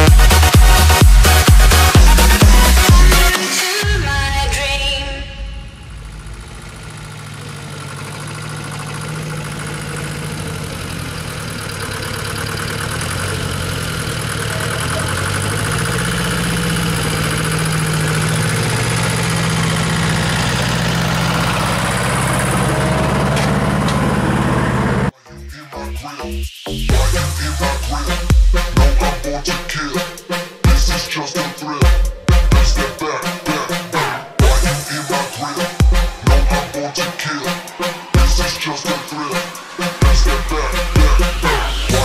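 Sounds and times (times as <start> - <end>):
loader engine idling: 0.0 - 25.2, 26.8 - 42.0.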